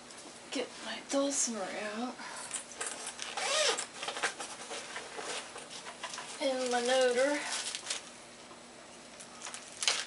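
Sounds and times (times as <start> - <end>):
bag rustling and scraping: 2.8 - 8.0.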